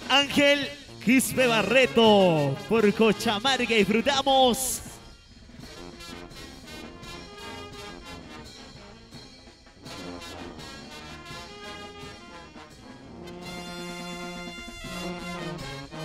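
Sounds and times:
brass band playing: 0.0s - 4.9s, 5.7s - 9.2s, 9.8s - 16.0s.

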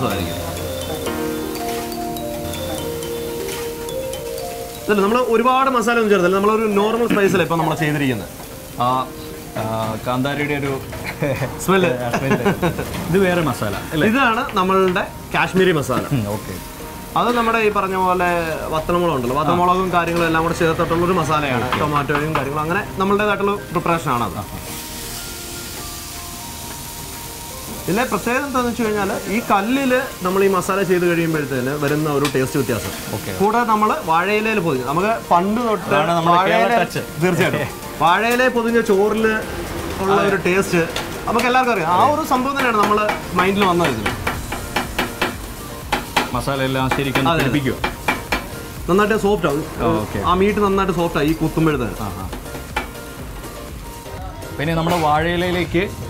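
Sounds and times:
meat sizzling on a griddle: 0.0s - 56.0s
soft background music: 0.0s - 56.0s.

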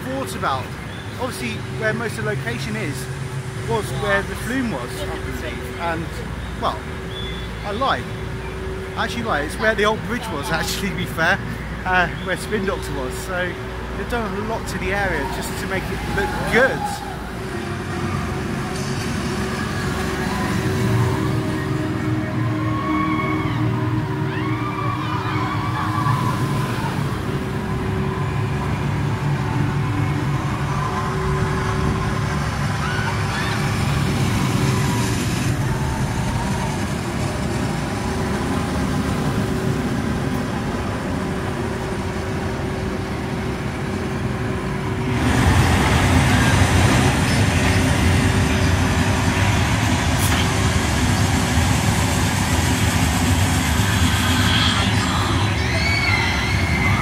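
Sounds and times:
roller coaster noise: 0.0s - 57.0s
steady machine hum: 0.0s - 57.0s.

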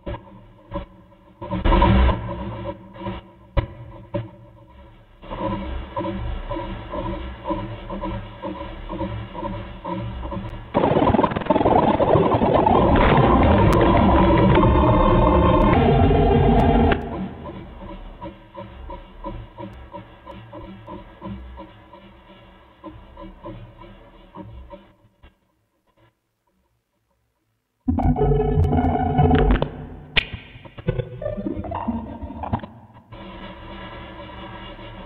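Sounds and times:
glitchy synthesized sound: 5.4s - 24.4s, 27.9s - 35.0s.

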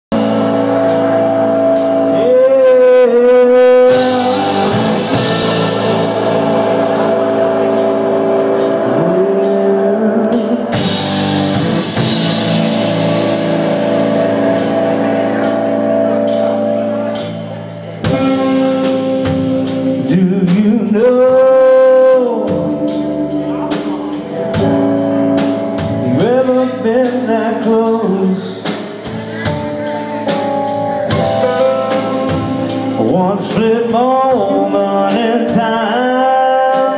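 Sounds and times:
drum kit with cymbals: 0.1s - 36.9s
electric guitars: 0.1s - 36.9s.

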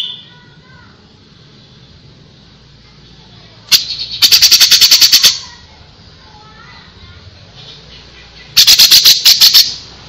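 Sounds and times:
bird singing sharp high notes: 3.7s - 5.4s, 8.4s - 9.9s.

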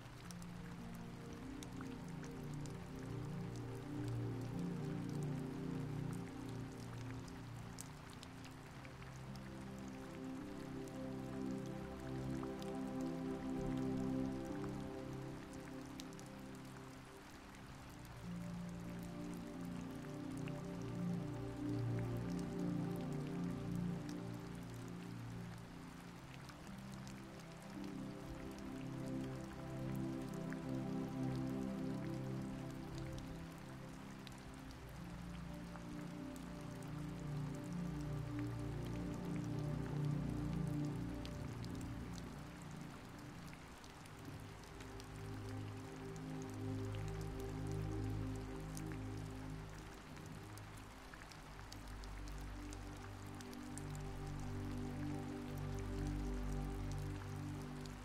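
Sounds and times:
rain falling: 0.0s - 58.0s
raindrop ticks: 0.0s - 58.0s
slow music of low chords: 0.0s - 58.0s.

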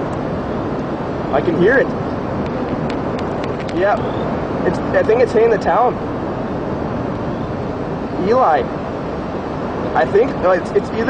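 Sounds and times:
strong wind roaring: 0.0s - 11.0s.

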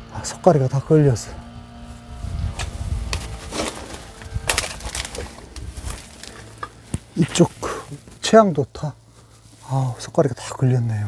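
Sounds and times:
low rumble of wind or handling: 0.0s - 11.0s
footsteps crunching on dirt: 1.8s - 10.6s.

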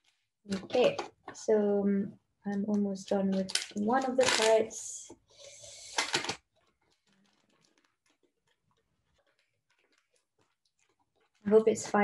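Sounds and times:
plastic packaging crinkling: 3.2s - 11.6s.

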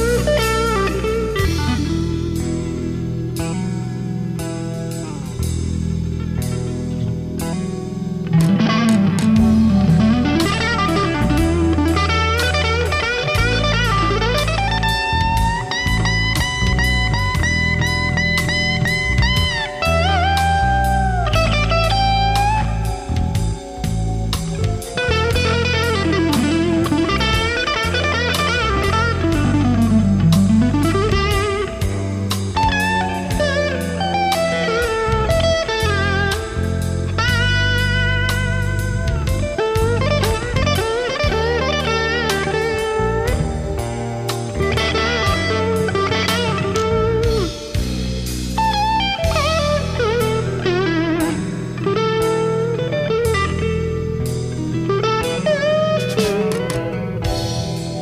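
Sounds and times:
backing track with beat: 0.0s - 58.0s
electric guitar lead: 0.0s - 58.0s.

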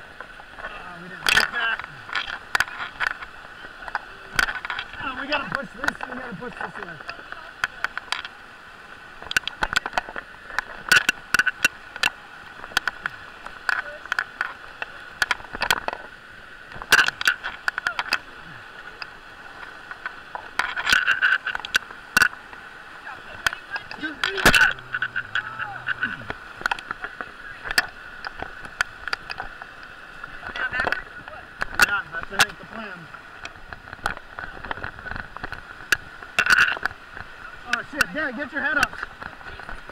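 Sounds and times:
river rapid rushing: 0.0s - 39.9s
knocks and splashes: 9.2s - 39.9s.

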